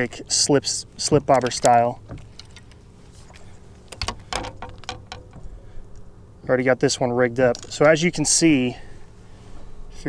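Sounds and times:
fishing tackle rustling: 0:00.0 - 0:06.4, 0:07.3 - 0:09.9.

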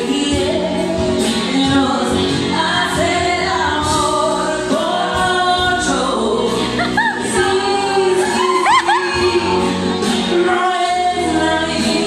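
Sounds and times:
karaoke backing track: 0:00.0 - 0:12.0
woman singing into microphone: 0:00.0 - 0:12.0.

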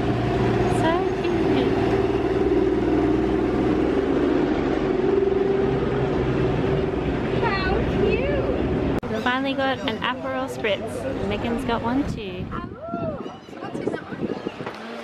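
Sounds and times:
road train engine droning: 0:00.0 - 0:12.5.

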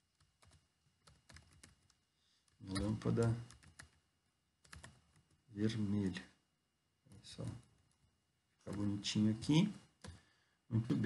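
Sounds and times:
typing on computer keyboard: 0:00.1 - 0:04.0, 0:04.6 - 0:05.4, 0:08.7 - 0:10.2.

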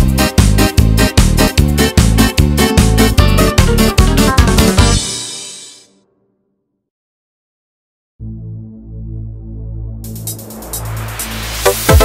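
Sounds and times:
synth chords over bass drone: 0:08.2 - 0:12.0.

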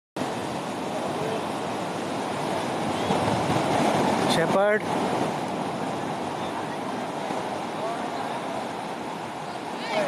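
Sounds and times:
surf breaking on beach: 0:00.2 - 0:10.0.

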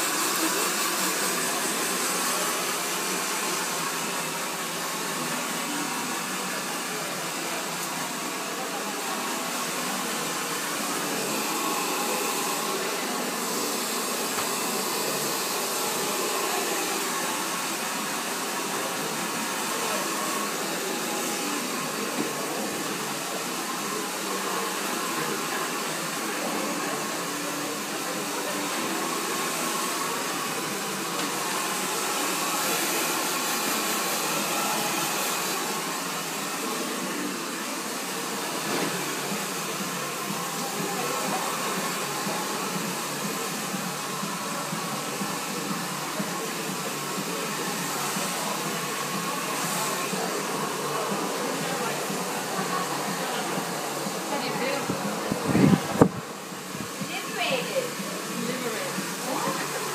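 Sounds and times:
hair dryer blowing: 0:00.0 - 0:59.9.

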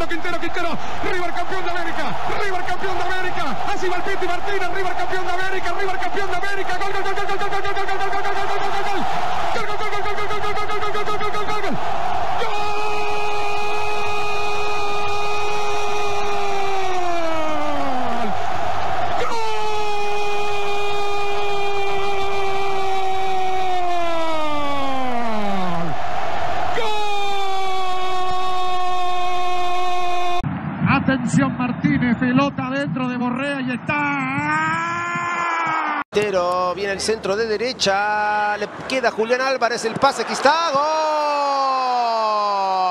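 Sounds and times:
stadium crowd noise: 0:00.0 - 0:42.9
commentator shouting goal call: 0:26.8 - 0:35.3.

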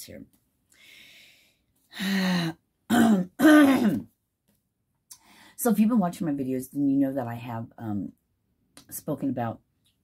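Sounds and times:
woman clearing her throat: 0:02.9 - 0:04.1.

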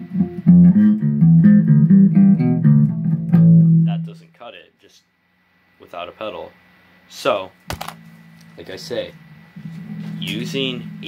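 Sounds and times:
distorted electric bass guitar: 0:00.0 - 0:04.2, 0:08.0 - 0:11.0.

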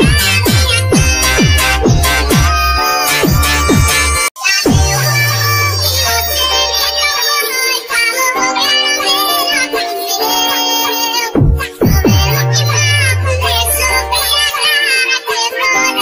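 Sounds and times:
deep bass sweeping downward: 0:00.0 - 0:06.4
electronic backing music: 0:00.0 - 0:16.0
sped-up high-pitched singing: 0:00.0 - 0:16.0.

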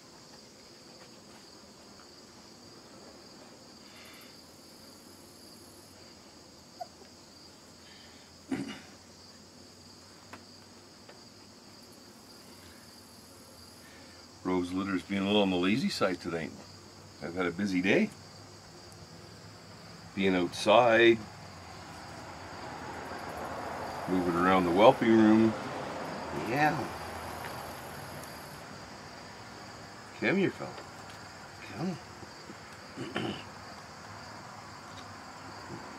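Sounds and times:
insects chirring: 0:00.0 - 0:35.9.

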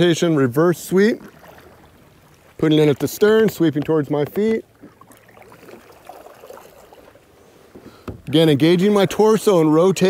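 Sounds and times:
kayak paddle sweeping through water: 0:00.0 - 0:09.7
water splashes and drips: 0:00.0 - 0:10.0.

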